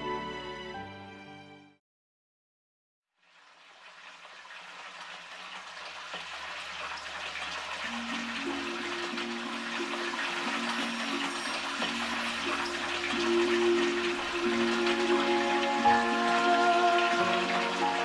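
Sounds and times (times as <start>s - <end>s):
rushing water: 3.2s - 18.0s
soft background music: 7.8s - 18.0s.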